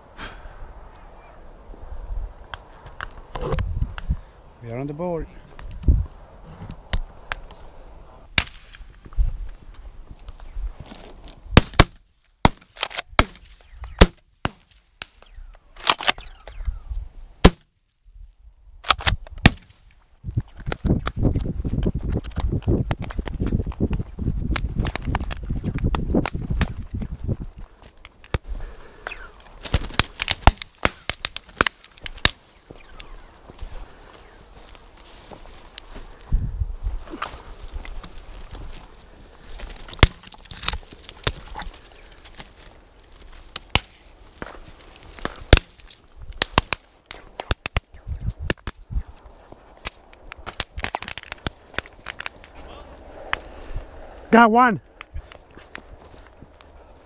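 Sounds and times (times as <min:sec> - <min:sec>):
twigs snapping: 0:10.2 - 0:16.6, 0:24.5 - 0:26.9, 0:27.8 - 0:33.8, 0:34.6 - 0:36.2, 0:37.0 - 0:48.8, 0:49.7 - 0:52.6
footsteps crunching through brush: 0:29.2 - 0:47.9, 0:55.2 - 0:57.0
sharp loud cracks: 0:29.6 - 0:32.4.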